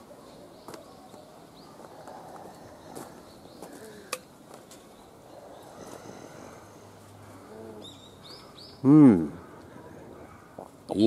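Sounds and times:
faint outdoor ambience: 0.0s - 11.0s
small bird chirping: 7.5s - 8.9s.

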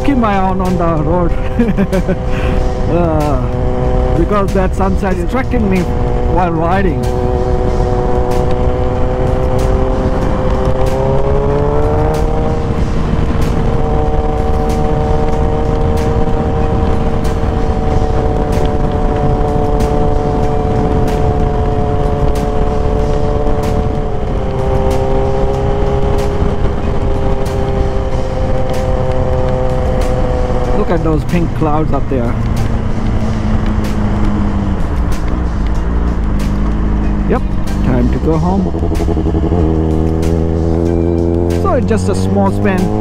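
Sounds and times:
motorcycle engine accelerating: 0.0s - 43.0s
wind noise on microphone: 7.0s - 43.0s.

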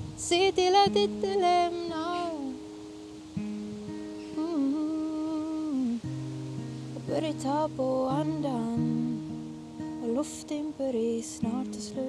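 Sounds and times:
acoustic guitar notes: 0.0s - 12.0s
woman singing a long note: 7.0s - 9.4s.

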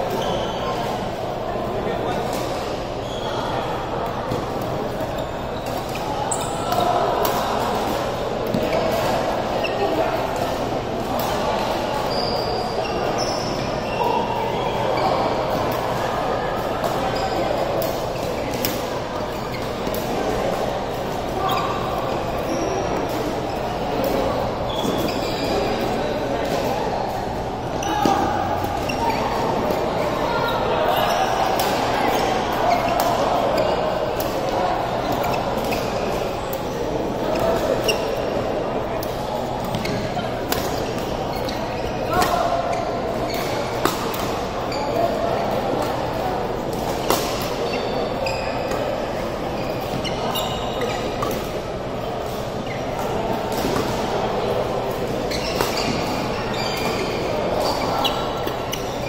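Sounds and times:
background chatter: 0.0s - 59.0s
sports hall background noise: 0.0s - 59.0s
shoe squeak on court floor: 0.1s - 1.0s, 2.2s - 3.7s, 4.3s - 7.0s, 11.2s - 15.7s, 16.8s - 20.2s, 21.3s - 26.7s, 27.8s - 36.5s, 37.3s - 38.3s, 39.0s - 45.2s, 47.0s - 51.6s, 52.2s - 54.0s, 55.2s - 59.0s.

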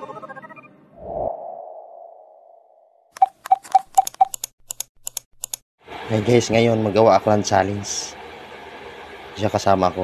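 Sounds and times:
clicks: 3.1s - 5.6s.

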